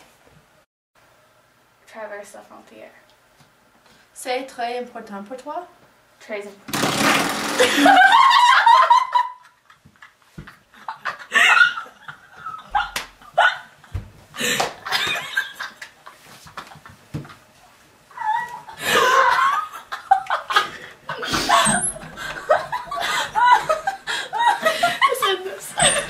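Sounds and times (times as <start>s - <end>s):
girls laughing: 7.6s - 17.0s, 18.1s - 26.0s.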